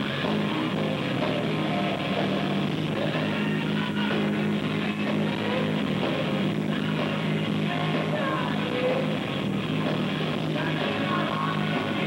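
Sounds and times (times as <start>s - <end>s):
electric guitar: 0.0s - 12.0s
hard rock band playing live: 0.0s - 12.0s.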